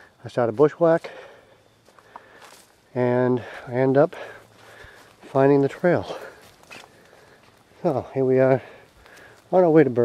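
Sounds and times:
footsteps on leaf litter: 0:01.8 - 0:10.0.

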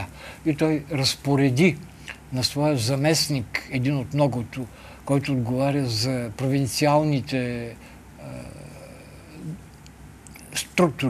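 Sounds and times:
steady low hum: 0:00.0 - 0:11.0
man breathing: 0:00.1 - 0:00.5, 0:04.7 - 0:05.0
man murmuring: 0:07.5 - 0:09.6.

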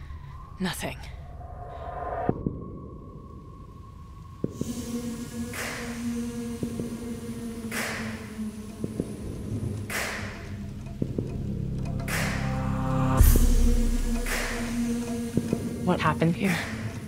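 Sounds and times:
low drone: 0:00.0 - 0:17.0.

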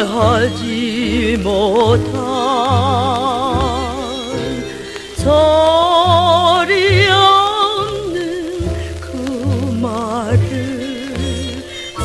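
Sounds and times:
woman singing with vibrato: 0:00.0 - 0:12.0.

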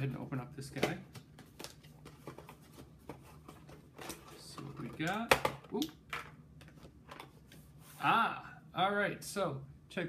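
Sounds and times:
packaging rustling and clicking: 0:00.8 - 0:05.6.

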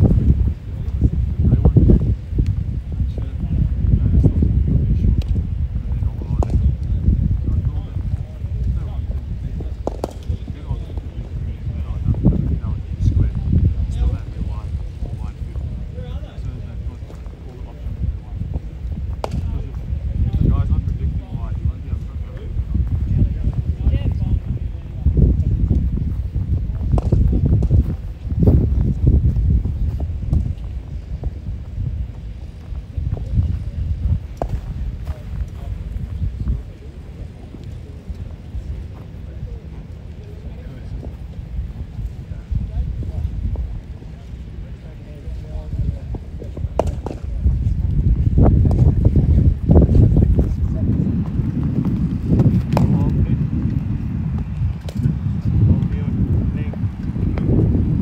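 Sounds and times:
distant voices: 0:00.0 - 0:58.0
wind rumble on microphone: 0:00.0 - 0:58.0.

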